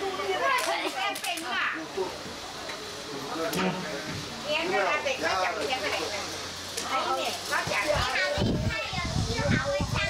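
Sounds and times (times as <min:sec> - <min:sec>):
children's voices: 0:00.0 - 0:02.1, 0:06.8 - 0:10.0
people chattering: 0:00.0 - 0:10.0.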